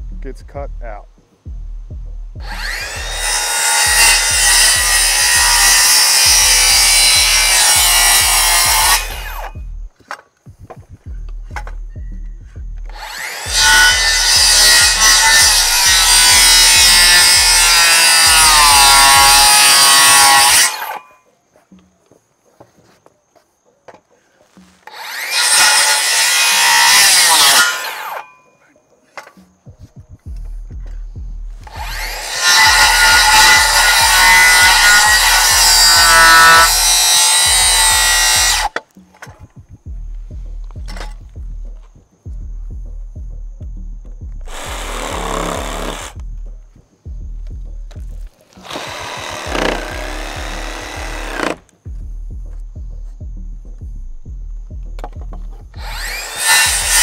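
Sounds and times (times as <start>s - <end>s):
circular saw cutting wood: 2.4s - 9.6s, 12.8s - 21.1s, 24.6s - 28.5s, 31.6s - 39.3s, 44.5s - 46.2s, 48.5s - 51.7s, 55.8s - 57.0s
saw motor whine: 2.4s - 9.6s, 12.9s - 21.1s, 24.9s - 28.4s, 31.6s - 38.8s, 48.6s - 51.6s, 55.8s - 57.0s.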